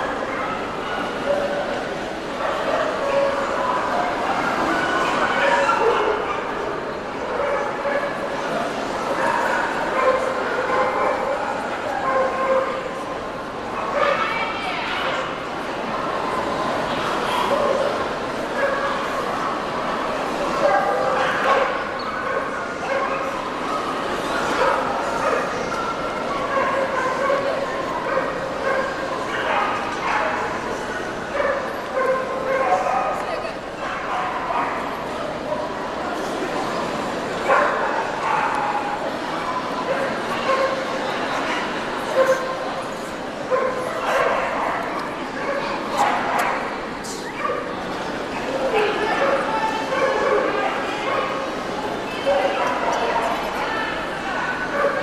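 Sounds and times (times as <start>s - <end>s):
crowd chatter: 0.0s - 55.0s.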